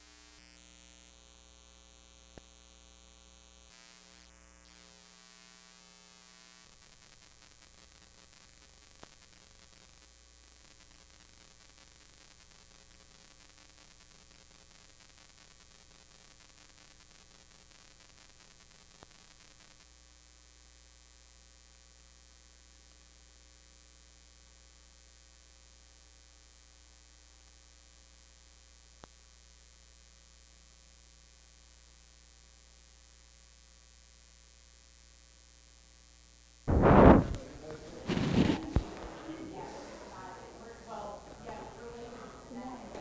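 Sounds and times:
low electrical hum with hiss: 0:00.0 - 0:43.0.

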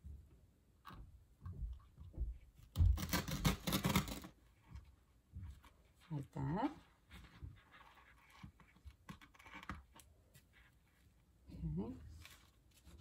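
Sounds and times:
soft knocks and rustling: 0:00.1 - 0:03.0.

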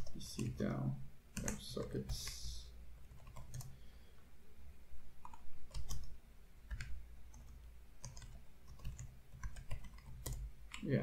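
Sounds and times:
typing on computer keyboard: 0:01.4 - 0:03.8, 0:05.2 - 0:10.9.

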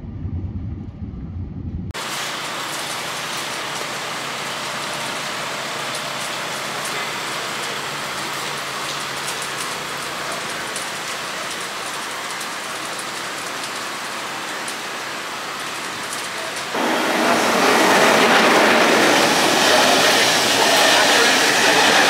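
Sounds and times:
bus engine idling: 0:02.0 - 0:14.6, 0:15.2 - 0:22.0
rain on a wet street: 0:02.0 - 0:22.0.

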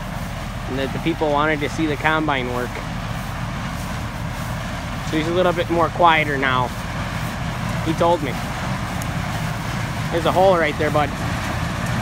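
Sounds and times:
combine harvester rumbling: 0:00.0 - 0:12.0.

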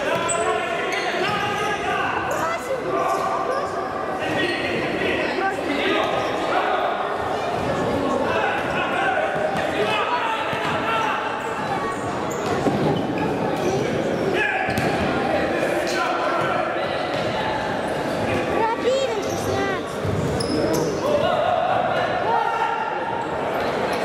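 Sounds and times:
shoe squeaks on wooden floor: 0:11.4 - 0:13.9.

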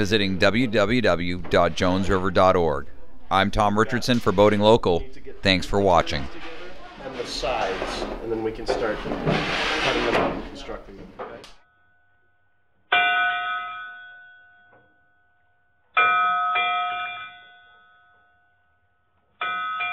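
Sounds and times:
indistinct voices: 0:00.0 - 0:11.6.

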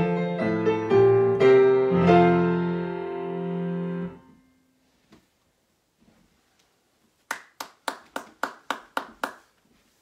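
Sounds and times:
hands clapping: 0:07.2 - 0:09.6.

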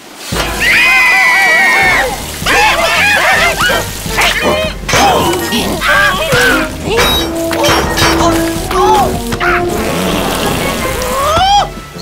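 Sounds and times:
rain falling on water: 0:00.0 - 0:07.6, 0:08.3 - 0:11.9.

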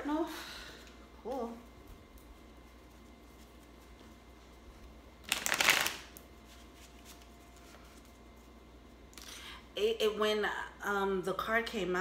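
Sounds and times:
cards being shuffled: 0:05.2 - 0:08.2.

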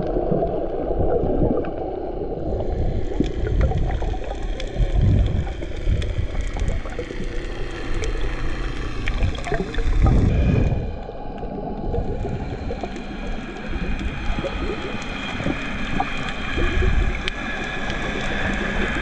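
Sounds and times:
faint clicks and crackles: 0:00.0 - 0:19.0
muffled underwater water rush: 0:00.0 - 0:19.0.

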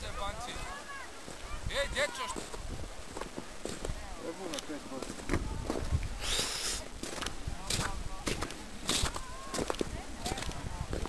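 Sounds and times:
wind on microphone: 0:00.0 - 0:04.2, 0:05.0 - 0:11.0
distant people calling and talking: 0:00.0 - 0:11.0.

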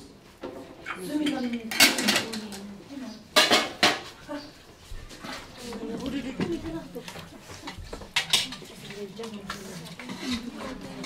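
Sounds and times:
metal pots clanking: 0:03.4 - 0:04.0.

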